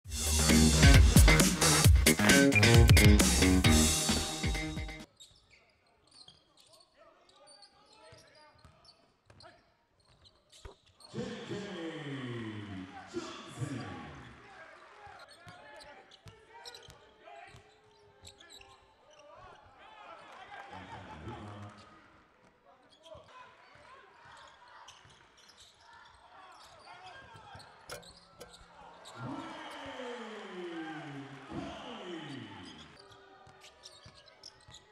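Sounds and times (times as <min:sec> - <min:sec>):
upbeat intro music: 0:00.1 - 0:05.0
voices in a hall: 0:11.0 - 0:34.9
man talking: 0:11.1 - 0:14.4, 0:29.1 - 0:32.9.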